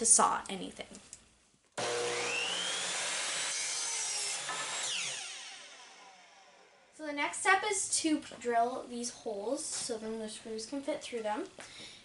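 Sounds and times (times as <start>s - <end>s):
miter saw cutting wood: 1.8s - 6.9s.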